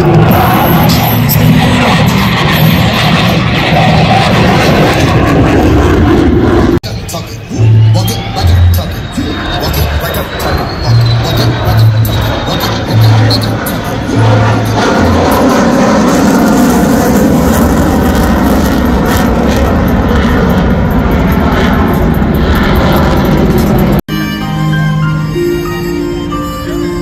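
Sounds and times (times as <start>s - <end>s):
jet engine roar overhead: 0.0s - 24.0s.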